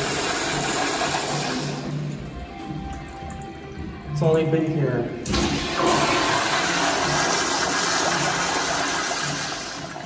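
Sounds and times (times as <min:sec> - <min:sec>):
toilet flushing: 0:00.0 - 0:03.3, 0:05.2 - 0:10.0.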